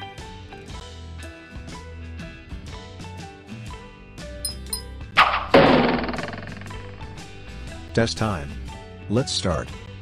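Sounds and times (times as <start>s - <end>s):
background music: 0.0s - 10.0s
sound effect strikes: 4.5s - 7.8s.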